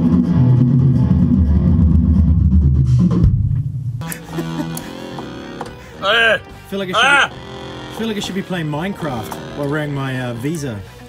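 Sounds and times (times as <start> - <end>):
bass and guitar heavy riff: 4.0 - 11.0.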